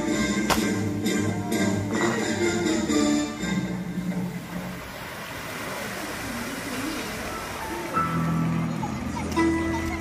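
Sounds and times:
fountain show music: 0.0s - 10.0s
fountain water rushing: 0.0s - 10.0s.

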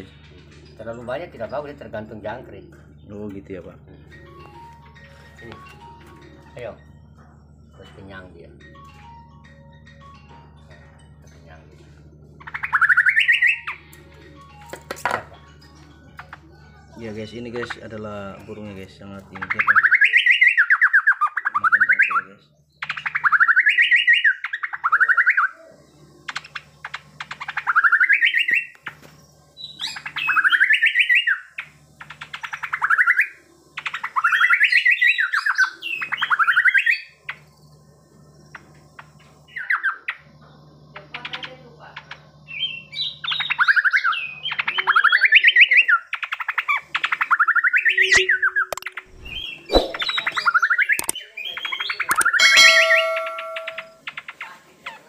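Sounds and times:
caged songbird singing: 0.0s - 55.0s.

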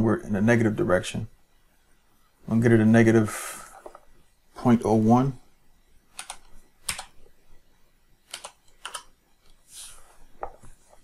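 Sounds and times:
computer keyboard clicks: 6.2s - 7.2s, 8.3s - 9.1s.

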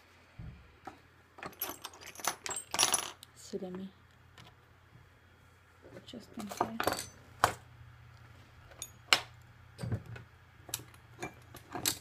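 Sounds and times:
metal tools clinking on stone: 1.4s - 3.2s, 6.4s - 7.2s, 10.7s - 12.0s.

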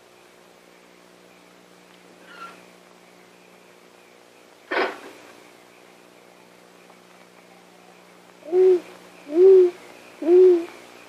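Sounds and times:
faint soundtrack hum: 0.0s - 11.0s
owl hooting: 8.4s - 10.8s.

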